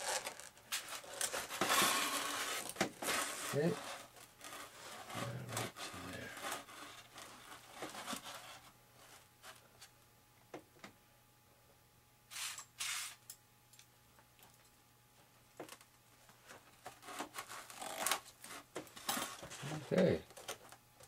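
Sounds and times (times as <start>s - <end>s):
tape rubbing on foam: 0.0s - 9.6s, 16.9s - 19.9s.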